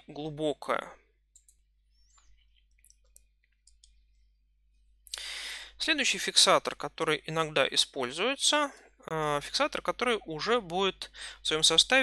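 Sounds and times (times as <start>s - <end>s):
faint clicks and ticks: 1.3s - 4.2s.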